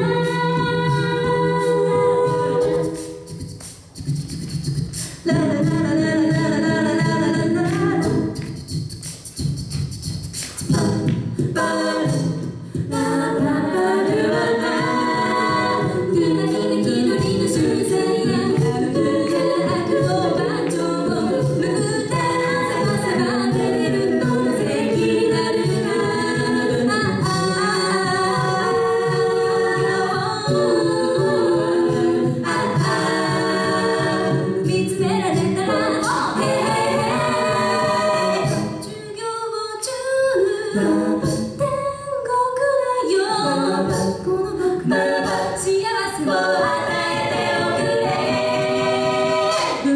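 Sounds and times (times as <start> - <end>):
steady beat: 0.0 - 38.9
female a cappella group singing: 0.0 - 49.9.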